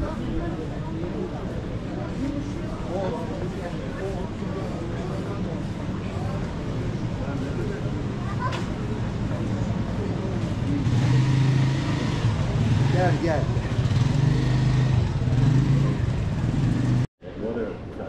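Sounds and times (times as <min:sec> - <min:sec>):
street crowd chatter: 0:00.0 - 0:18.0
motorcycle engine running: 0:10.5 - 0:17.1.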